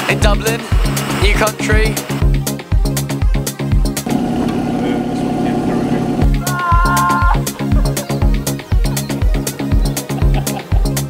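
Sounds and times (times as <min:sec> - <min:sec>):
diesel engine idling: 0:04.0 - 0:06.4.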